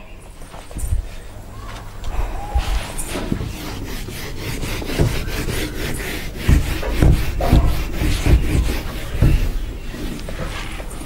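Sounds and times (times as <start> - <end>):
dull low thumps: 0.8 - 10.0
duster rubbing whiteboard: 2.4 - 11.0.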